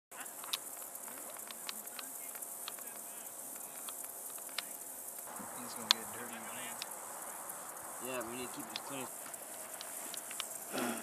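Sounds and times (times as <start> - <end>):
insects buzzing: 0.1 - 11.0
clicks: 6.7 - 6.9, 8.5 - 10.6.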